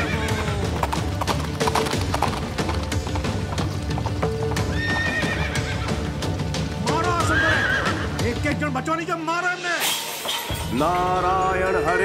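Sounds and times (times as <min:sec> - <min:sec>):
horse hooves on dirt: 0:00.0 - 0:06.8
background film music: 0:00.0 - 0:12.0.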